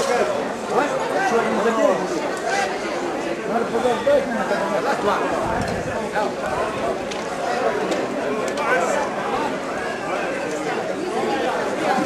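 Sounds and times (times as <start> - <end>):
overlapping chatter of voices: 0.0 - 12.0.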